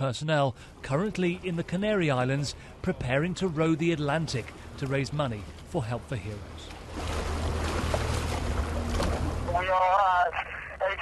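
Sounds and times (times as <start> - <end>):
water rushing around boat: 0.0 - 11.0.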